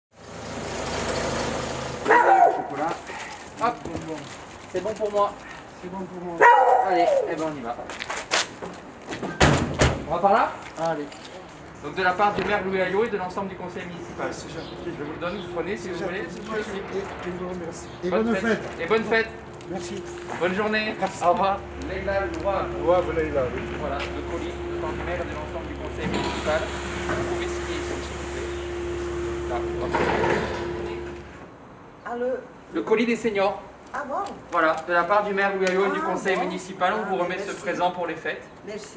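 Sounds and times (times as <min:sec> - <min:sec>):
street noise: 0:00.1 - 0:38.9
van doors slamming: 0:09.2 - 0:10.1
mechanical hum: 0:11.9 - 0:31.6.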